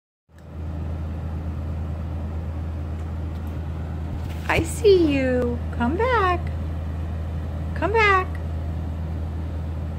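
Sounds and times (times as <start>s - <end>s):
steady low hum: 0.3s - 9.9s.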